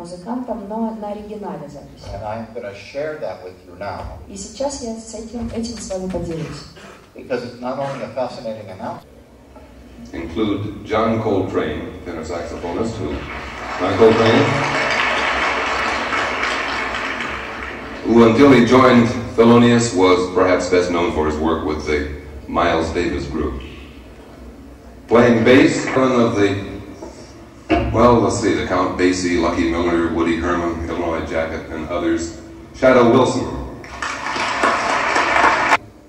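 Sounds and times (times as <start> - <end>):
audience applause over loudspeakers: 12.6 - 19.1, 33.8 - 35.8.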